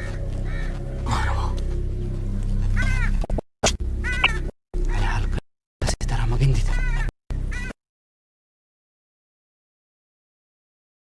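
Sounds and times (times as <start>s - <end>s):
low music bed: 0.0s - 7.7s.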